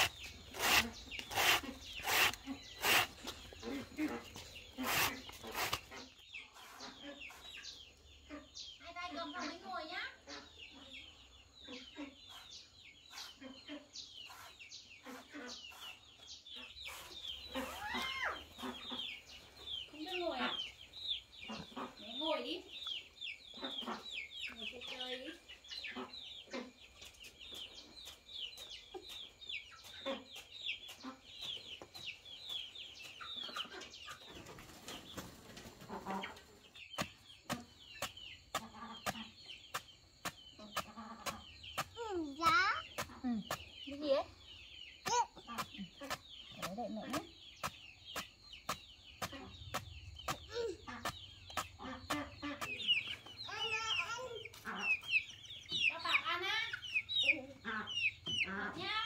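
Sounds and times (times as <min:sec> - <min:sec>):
chickens clucking: 0:00.0 - 0:59.0
chicks peeping: 0:00.0 - 0:59.0.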